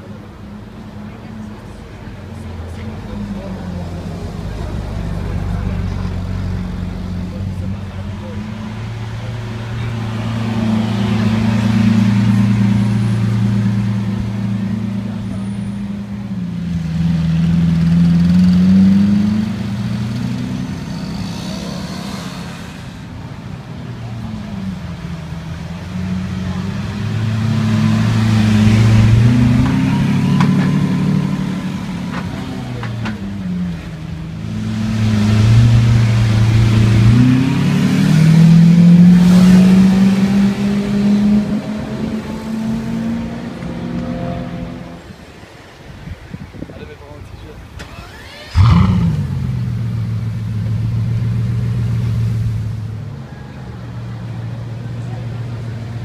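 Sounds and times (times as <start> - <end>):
car engine idling and revving: 0.0 - 56.0.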